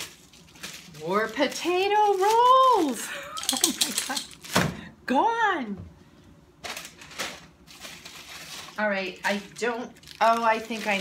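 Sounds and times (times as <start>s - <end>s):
plastic wrapper crinkling: 0.0s - 3.1s, 6.6s - 11.0s.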